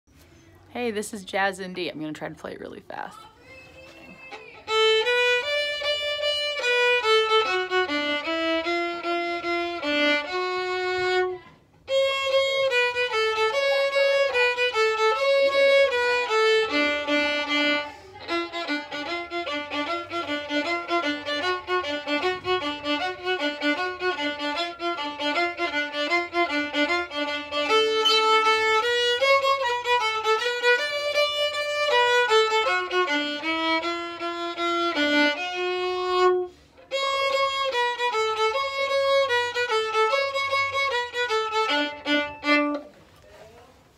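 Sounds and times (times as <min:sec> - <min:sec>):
solo violin playing lively tune: 0:03.8 - 0:42.9.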